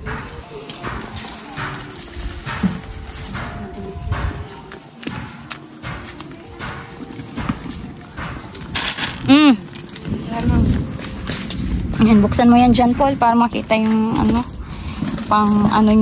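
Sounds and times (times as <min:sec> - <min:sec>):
footsteps on dirt path: 0:00.0 - 0:16.0.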